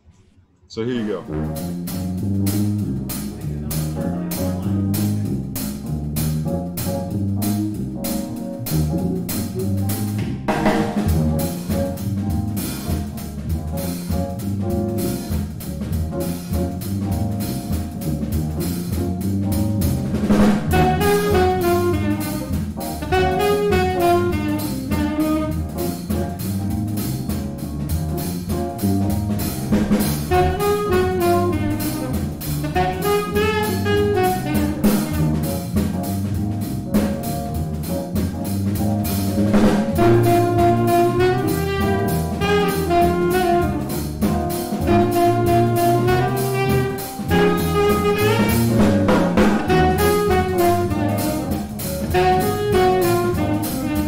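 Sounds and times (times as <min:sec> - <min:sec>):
drum-kit groove: 0:00.8 - 0:54.0
sousaphone bass line: 0:00.8 - 0:54.0
saxophones and trumpet melody: 0:00.9 - 0:54.0.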